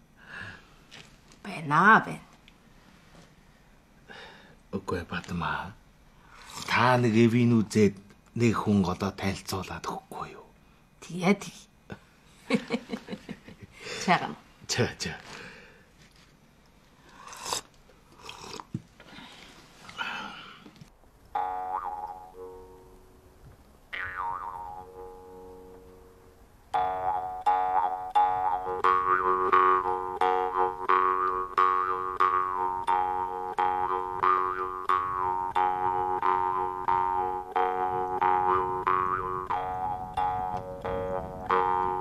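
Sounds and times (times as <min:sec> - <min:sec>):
jaw harp plucking: 0:21.3 - 0:23.1, 0:23.9 - 0:26.2, 0:26.8 - 0:42.0.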